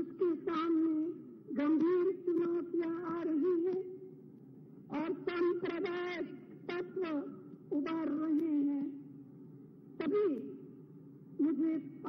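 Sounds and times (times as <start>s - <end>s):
woman speaking into a microphone: 0.0s - 4.1s, 4.9s - 9.0s, 10.0s - 10.7s, 11.4s - 12.0s.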